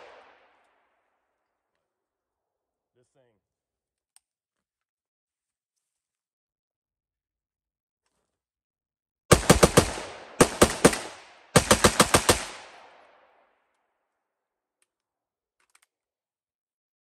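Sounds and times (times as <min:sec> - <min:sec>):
rifle shots with echo: 0:00.0 - 0:00.6, 0:09.3 - 0:13.4.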